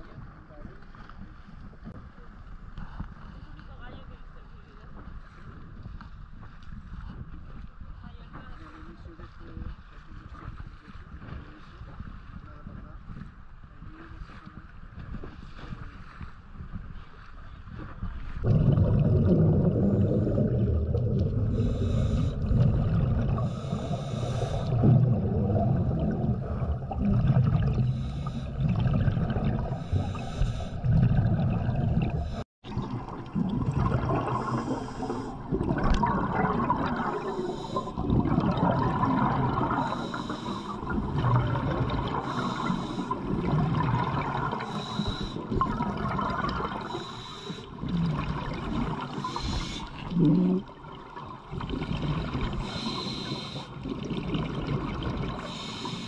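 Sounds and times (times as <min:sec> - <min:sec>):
low underwater rumble: 0:00.0 - 0:55.6
bubbles gurgling: 0:18.4 - 0:56.0
diver's regulator hissing: 0:21.4 - 0:24.9, 0:27.8 - 0:28.7, 0:29.5 - 0:31.0, 0:34.2 - 0:35.6, 0:36.8 - 0:38.0, 0:39.5 - 0:40.9, 0:42.1 - 0:43.3, 0:44.4 - 0:45.5, 0:46.8 - 0:47.8, 0:49.0 - 0:50.5, 0:52.6 - 0:53.8, 0:55.3 - 0:56.0.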